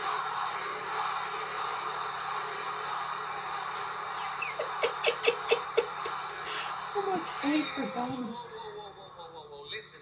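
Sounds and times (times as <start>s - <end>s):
crowd booing: 0.0s - 9.4s
man laughing out loud: 4.2s - 6.7s.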